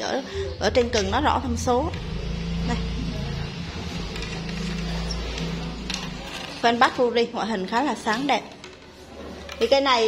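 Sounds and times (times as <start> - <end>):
low motor hum: 0.4 - 6.8.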